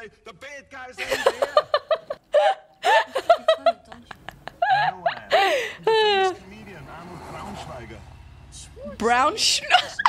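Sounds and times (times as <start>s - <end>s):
woman laughing hard: 1.0s - 6.4s, 9.7s - 10.0s.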